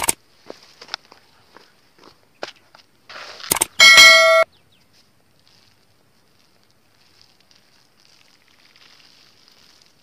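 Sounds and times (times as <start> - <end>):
notification bell ding: 3.8 - 4.4.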